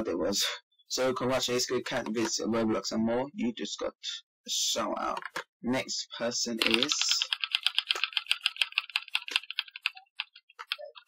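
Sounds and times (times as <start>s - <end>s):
spinning wheel ticking: 6.6s - 11.0s.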